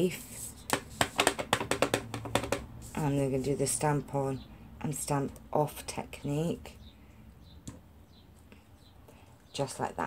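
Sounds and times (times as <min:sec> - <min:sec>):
stamp tapping on ink pad: 0:00.7 - 0:02.7.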